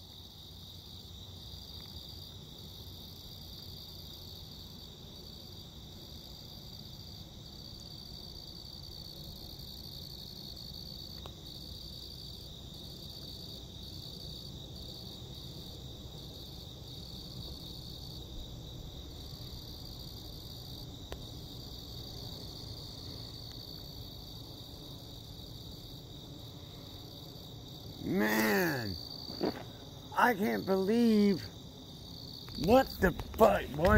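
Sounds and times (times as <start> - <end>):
night insects chirring: 0.0 - 33.9.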